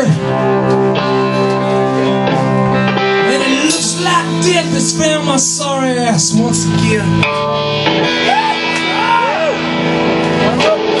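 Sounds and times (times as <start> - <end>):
electric guitar chord ringing: 0.0 - 11.0.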